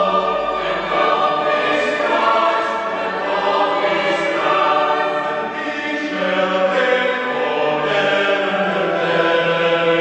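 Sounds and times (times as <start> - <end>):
choir singing held notes: 0.0 - 10.0.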